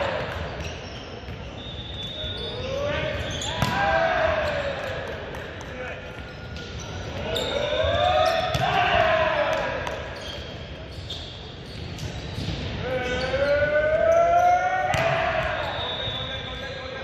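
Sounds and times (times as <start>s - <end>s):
players shouting: 2.5s - 5.1s, 7.2s - 10.0s.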